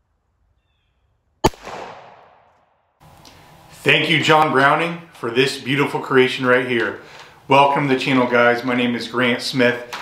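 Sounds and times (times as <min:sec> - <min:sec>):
pistol shot echoing: 0:01.4 - 0:02.8.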